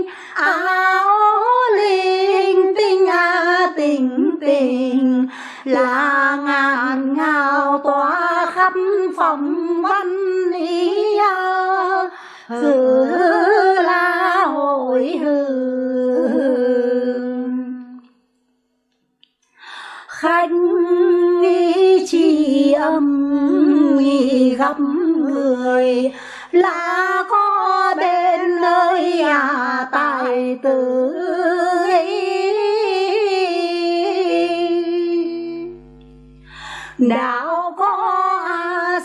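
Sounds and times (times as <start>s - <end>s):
woman singing a long held note: 0.0s - 18.1s, 20.0s - 39.0s
intake of breath: 5.3s - 5.7s, 12.1s - 12.5s, 19.6s - 20.1s, 26.1s - 26.5s, 36.4s - 37.0s.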